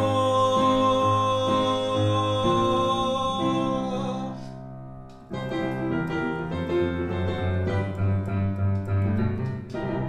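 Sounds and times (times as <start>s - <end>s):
electronic keyboard piano chords: 0.0s - 10.0s.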